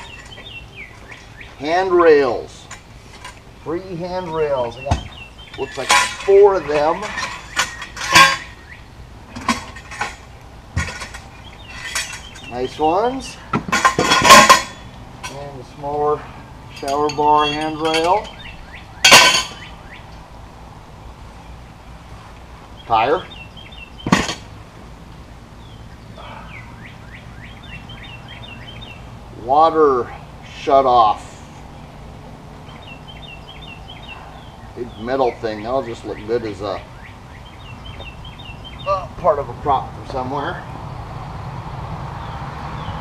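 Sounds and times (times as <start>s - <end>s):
small birds chirping: 0.0s - 13.6s, 14.2s - 43.0s
tire thumping on ground: 4.8s - 5.3s
ringing metallic clang: 4.8s - 8.7s, 9.3s - 12.5s, 13.6s - 15.5s, 16.7s - 19.7s, 24.0s - 24.5s
metal knocks and clinks: 4.9s - 8.6s, 9.3s - 12.6s, 13.5s - 15.5s, 16.7s - 19.6s, 24.0s - 24.5s.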